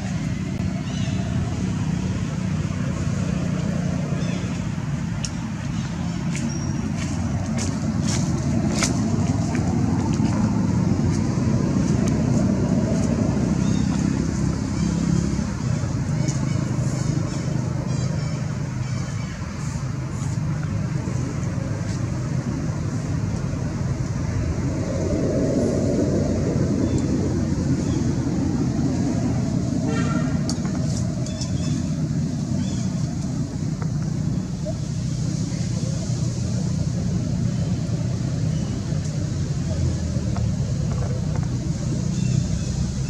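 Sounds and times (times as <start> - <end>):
traffic rumble: 0.0 - 43.0.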